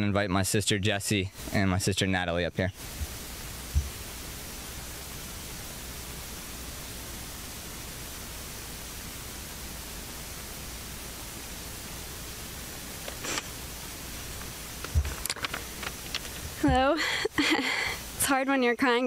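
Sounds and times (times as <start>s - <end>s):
microphone hiss: 0.0s - 19.0s
short low thump: 3.0s - 4.0s.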